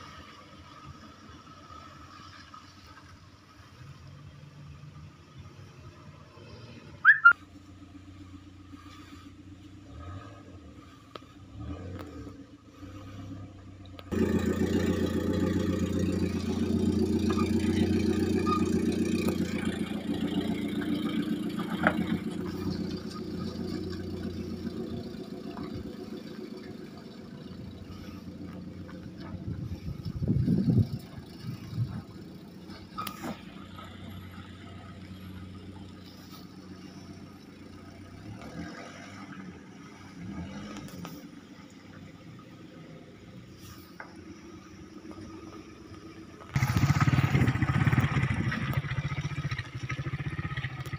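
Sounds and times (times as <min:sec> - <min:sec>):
car engine driving away: 0:00.0 - 0:50.9.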